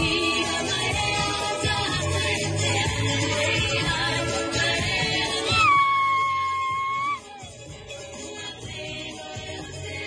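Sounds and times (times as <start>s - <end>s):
group singing: 0.0s - 5.8s, 7.9s - 10.0s.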